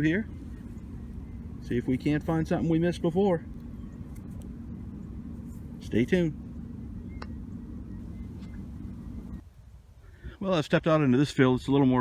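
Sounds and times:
faint hum: 0:00.0 - 0:11.2
low background rumble: 0:00.0 - 0:12.0.

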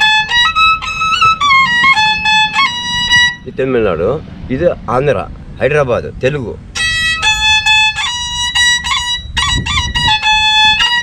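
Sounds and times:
bowed fiddle high notes: 0:00.0 - 0:03.6, 0:06.8 - 0:11.0.

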